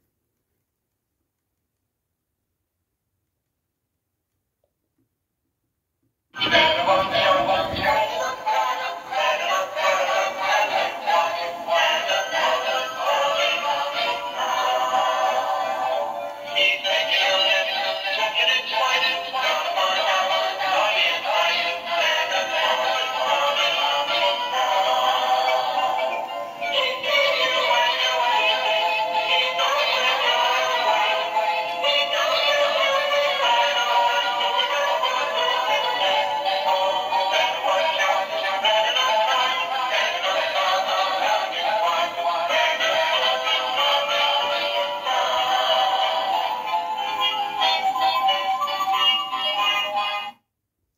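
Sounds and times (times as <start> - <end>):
tinny song from toy speakers: 6.4 - 50.4.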